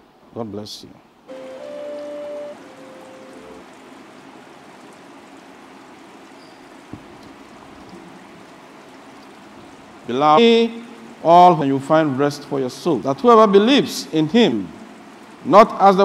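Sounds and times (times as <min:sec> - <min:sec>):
sound system hiss: 0:01.3 - 0:03.8
sustained musical chord: 0:01.3 - 0:03.8.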